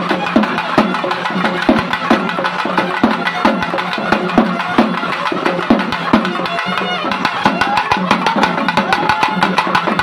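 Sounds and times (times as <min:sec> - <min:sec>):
barrel drums beaten fast: 0:00.0 - 0:10.0.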